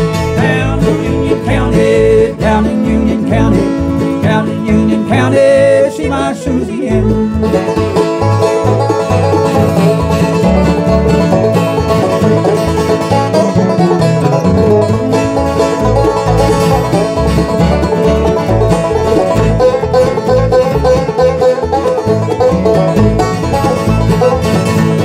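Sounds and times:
bluegrass band playing: 0.0s - 25.0s
upright bass plucking: 0.0s - 25.0s.

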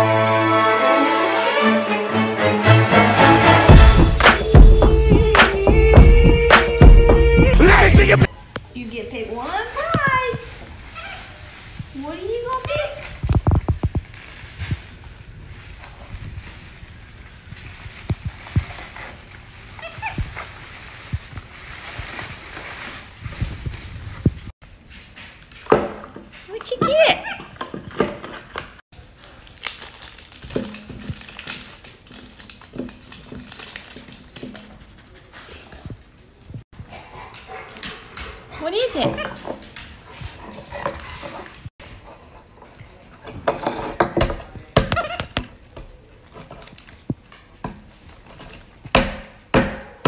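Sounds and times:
loud cry: 7.4s - 8.3s
plastic bag rustling: 9.4s - 25.6s, 29.0s - 34.9s.

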